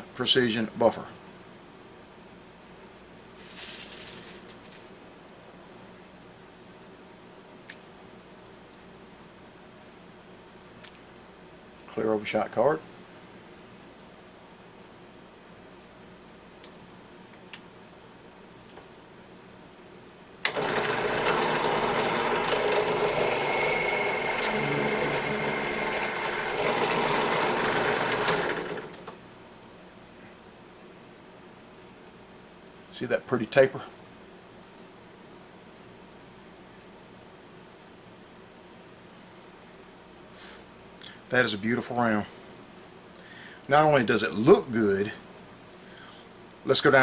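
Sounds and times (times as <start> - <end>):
drill press motor running: 20.4 - 29.2.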